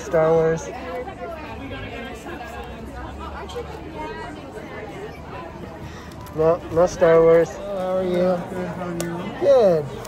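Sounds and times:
distant people chattering: 0:00.0 - 0:10.0.

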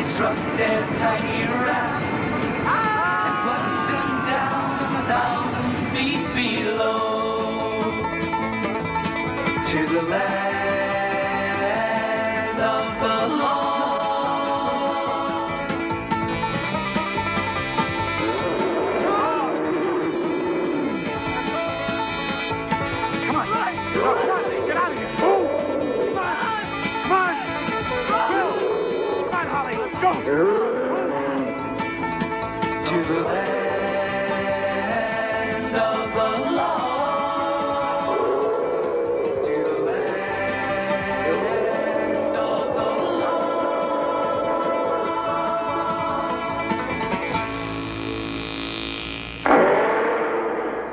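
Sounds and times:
bluegrass banjo music: 0:04.2 - 0:38.3, 0:39.7 - 0:48.2
sudden loud rough sound: 0:47.3 - 0:50.9.

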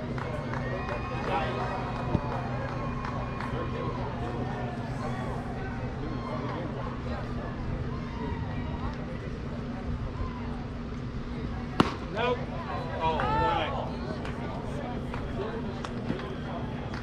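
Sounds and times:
chatter of voices: 0:00.0 - 0:17.0.

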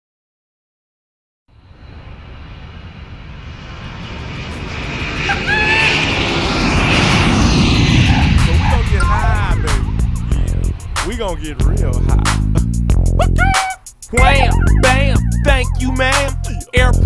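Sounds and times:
jet airliner engine noise: 0:01.6 - 0:16.4
brief voices: 0:13.2 - 0:17.0.

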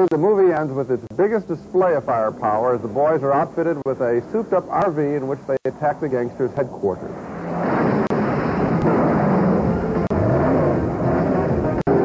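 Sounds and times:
vehicle engine running: 0:07.4 - 0:12.0.

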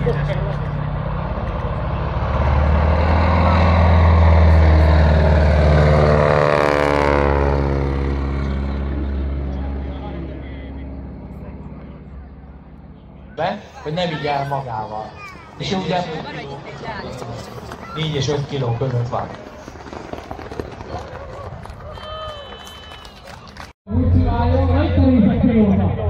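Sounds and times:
propeller plane flying by: 0:00.0 - 0:26.0.

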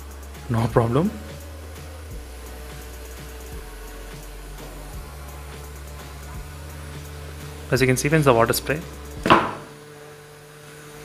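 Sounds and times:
small fan humming: 0:00.0 - 0:11.0.

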